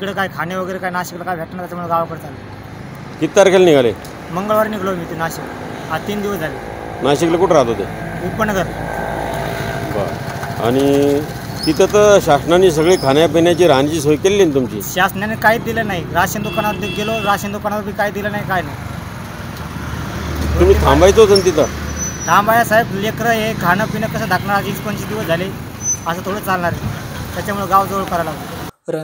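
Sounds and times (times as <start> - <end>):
man talking: 0.0 - 2.4, 3.2 - 8.8, 9.8 - 18.8, 20.5 - 21.7, 22.3 - 29.0
small engine rumbling: 2.1 - 28.7.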